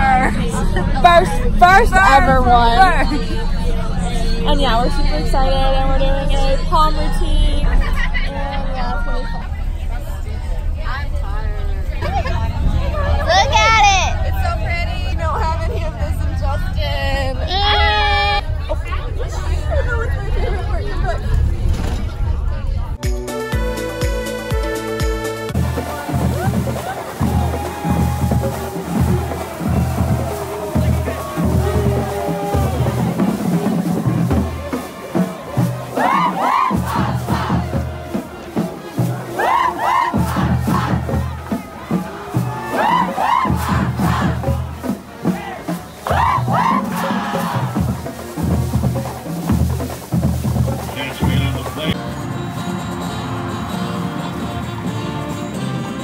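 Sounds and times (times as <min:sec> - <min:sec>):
girls talking and calling out: 0:00.0 - 0:09.8, 0:25.7 - 0:49.4
bus rumble: 0:00.0 - 0:23.0, 0:25.6 - 0:48.8, 0:49.6 - 0:56.0
low steady drum beat: 0:25.5 - 0:52.0
group shouting a cheer: 0:26.1 - 0:33.6, 0:35.1 - 0:44.7, 0:45.3 - 0:47.8.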